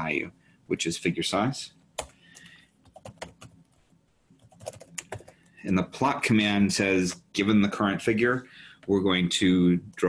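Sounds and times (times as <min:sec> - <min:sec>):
computer keyboard typing: 0:02.0 - 0:03.6, 0:04.3 - 0:05.6.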